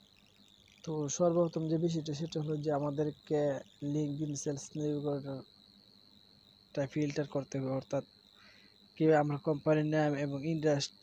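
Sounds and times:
faint high-pitched tone: 0.0 - 11.0
man speaking: 0.9 - 5.4, 6.8 - 8.0, 9.0 - 11.0.

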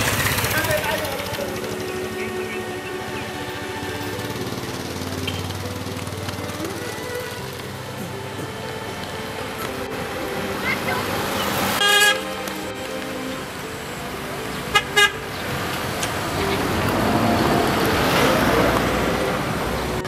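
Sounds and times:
car passing by: 0.0 - 20.0
car horn honking: 10.6 - 15.6.

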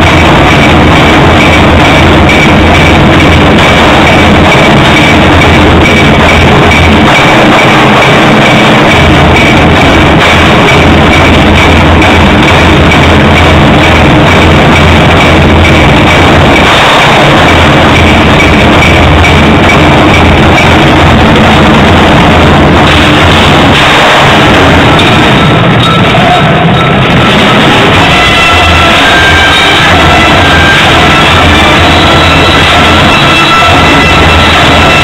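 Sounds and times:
drums struck with sticks: 0.0 - 35.0
orchestral music: 22.0 - 35.0.

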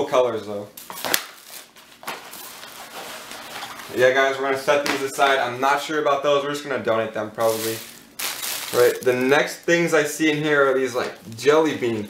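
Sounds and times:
fabric shoes rustling: 7.4 - 9.4.

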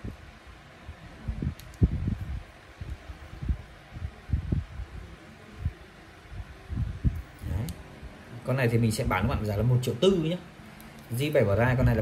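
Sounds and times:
microphone handling thumps and rustling: 1.3 - 3.6.

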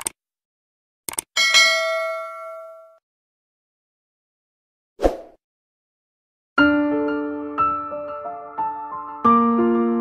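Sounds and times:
bright bell ding: 1.4 - 3.0.

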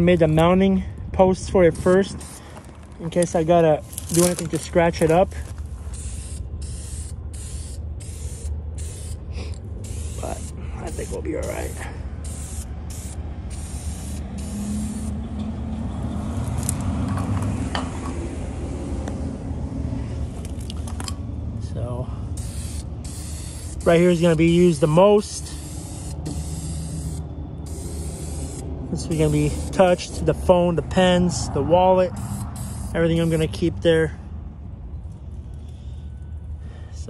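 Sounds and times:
aerosol spray can spraying: 9.9 - 15.2, 22.4 - 24.2, 25.4 - 30.1, 32.2 - 33.6.

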